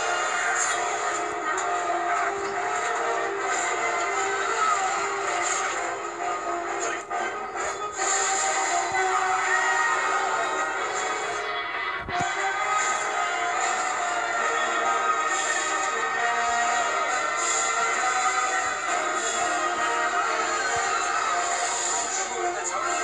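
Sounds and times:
dramatic film music from television: 0.0s - 23.0s.

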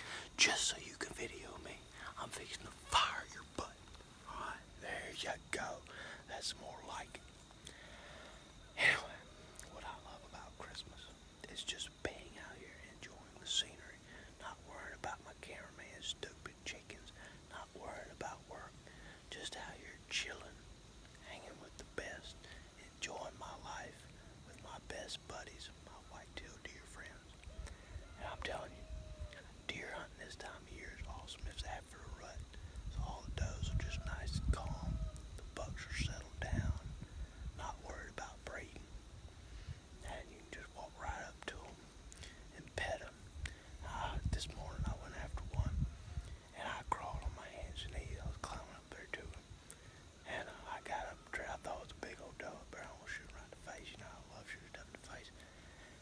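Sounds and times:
man whispering: 0.0s - 56.0s.

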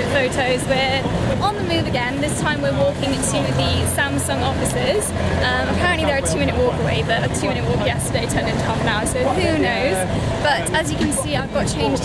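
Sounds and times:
street noise: 0.0s - 12.0s
woman talking: 0.0s - 12.0s.

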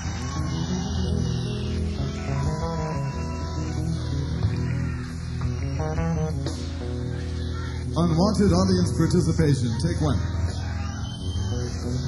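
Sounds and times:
rock band playing: 0.0s - 9.1s.

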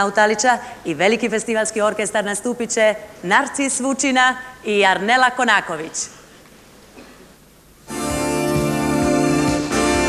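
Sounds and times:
orchestra playing full chord: 7.9s - 10.0s.

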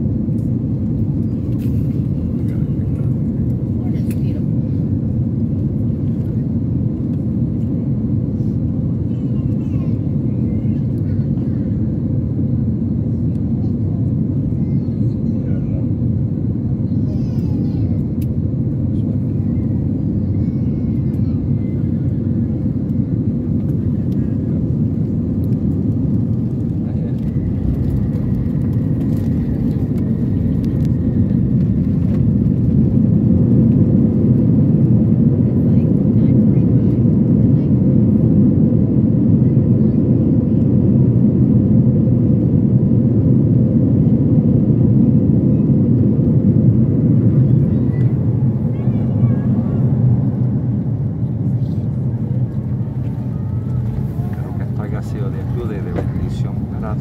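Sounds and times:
jet engine rumble in cabin: 0.0s - 57.0s.

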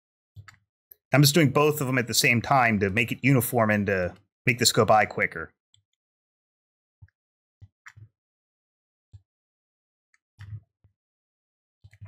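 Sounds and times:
computer mouse clicks: 0.4s - 0.6s.

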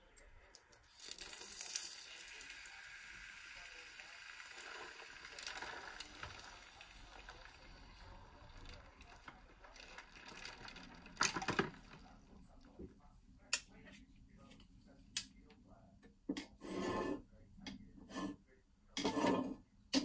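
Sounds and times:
hot glass hissing in water: 0.8s - 8.7s.

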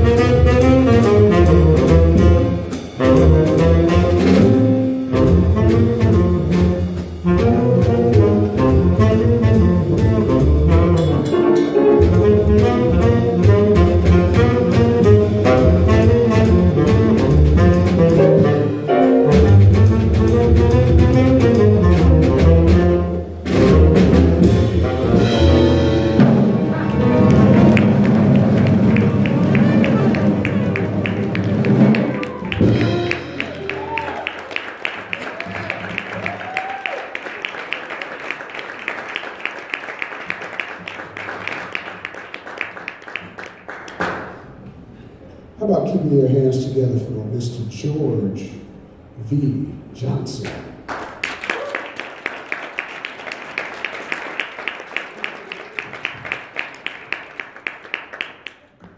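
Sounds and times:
drum kit cymbals: 0.0s - 26.8s
upright double bass: 0.0s - 34.2s
saxophone lead: 0.0s - 34.6s.

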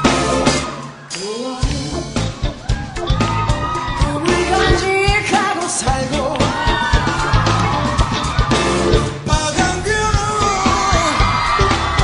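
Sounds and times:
steady drum beat: 0.0s - 0.9s, 1.6s - 12.0s
lead vocal singing: 0.0s - 2.6s, 4.0s - 7.2s, 8.5s - 12.0s
live rock band: 0.0s - 12.0s.

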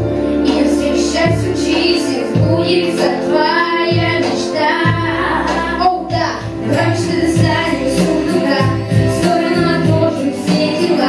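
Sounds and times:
musical accompaniment with bass: 0.0s - 11.0s
girl singing pop song: 0.4s - 11.0s.

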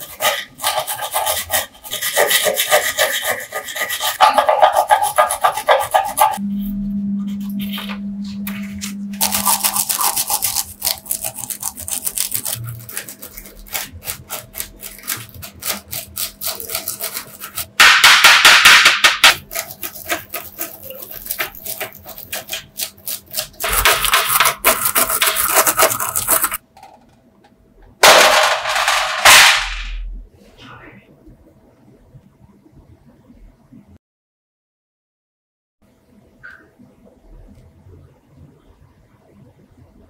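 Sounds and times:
wire brush scrubbing metal: 0.0s - 6.4s, 19.3s - 26.6s.

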